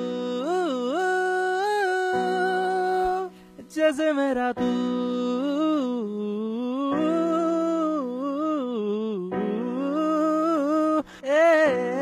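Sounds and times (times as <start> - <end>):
man singing wordless melody: 0.0 - 12.0.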